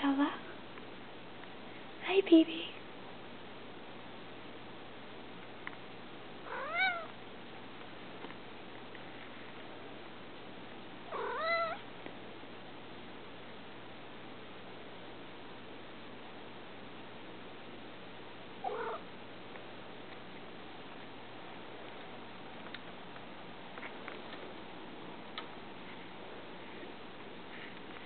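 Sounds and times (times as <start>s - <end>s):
faint steady hiss: 0.0s - 28.0s
cat meowing: 6.5s - 7.1s, 11.1s - 11.8s, 18.6s - 19.0s.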